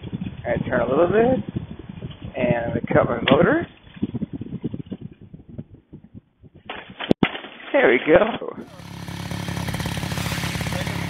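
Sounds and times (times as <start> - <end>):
engine running down low thudding: 8.6 - 11.0.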